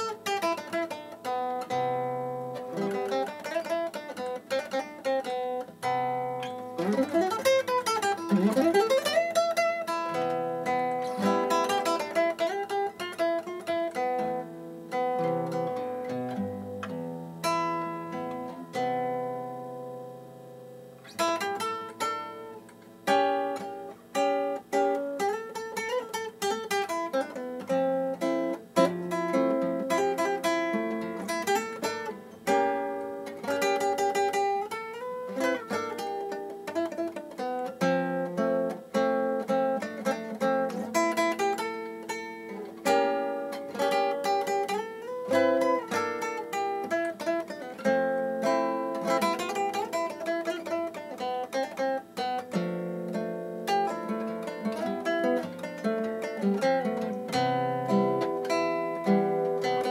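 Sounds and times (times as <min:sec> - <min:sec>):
classical guitar fingerstyle: 0:00.0 - 0:59.9.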